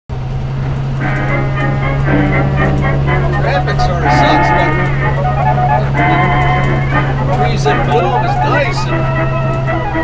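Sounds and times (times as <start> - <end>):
bus engine running: 0.1 - 10.0
music: 0.7 - 10.0.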